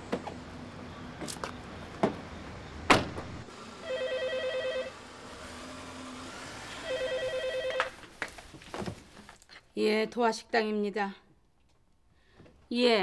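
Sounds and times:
car door shutting: 0:02.9 - 0:03.4
telephone ringing: 0:03.8 - 0:05.0, 0:06.8 - 0:07.9.

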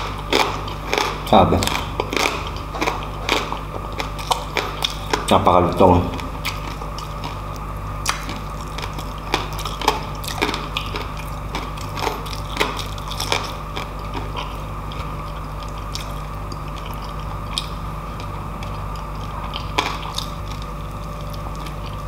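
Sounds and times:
chewing: 0:00.0 - 0:05.4, 0:06.1 - 0:22.0
steady low hum: 0:00.0 - 0:22.0.

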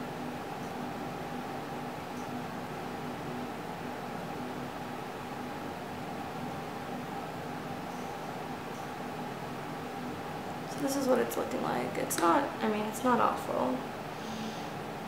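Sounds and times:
fan hiss and hum: 0:00.0 - 0:15.0.

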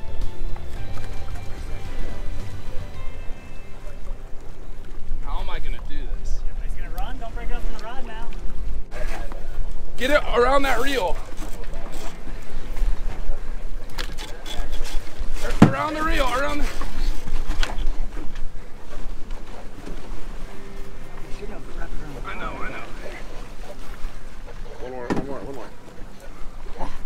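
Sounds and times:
wind and sea rumble: 0:00.0 - 0:27.0.

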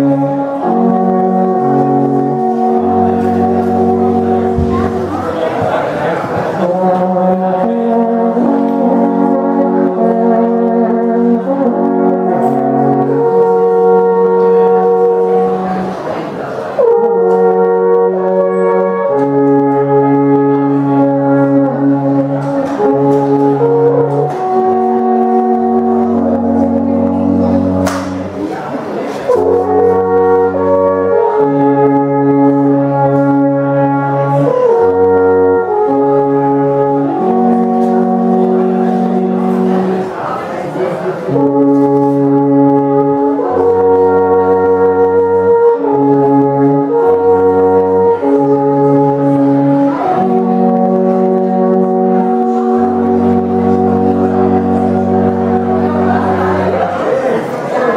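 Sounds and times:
alphorns playing slow melody: 0:00.0 - 0:05.4, 0:06.6 - 0:28.4, 0:29.3 - 0:40.1, 0:41.3 - 0:57.0.

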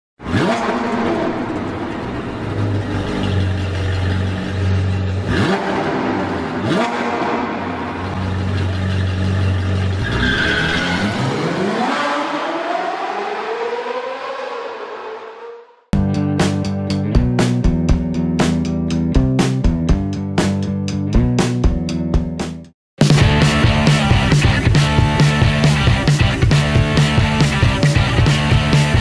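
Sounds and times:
sports car engine revving: 0:00.2 - 0:15.9.

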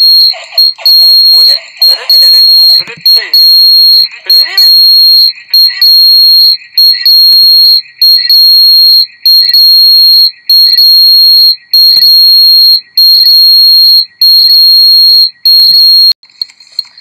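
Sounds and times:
echoed voice fragments: 0:02.8 - 0:03.4.

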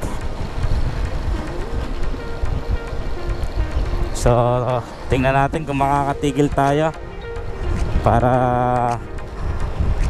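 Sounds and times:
faint background music: 0:00.0 - 0:10.0
motorcycle road noise: 0:00.0 - 0:10.0
wind rushing over microphone: 0:00.0 - 0:10.0
man speaking: 0:04.2 - 0:07.0, 0:08.0 - 0:09.1.

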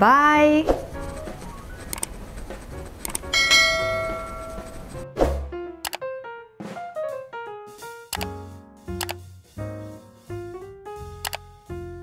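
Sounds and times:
mouse clicks: 0:01.9 - 0:02.2, 0:03.0 - 0:03.3, 0:09.0 - 0:09.2, 0:11.2 - 0:11.4
bright bell chime: 0:03.3 - 0:04.7.

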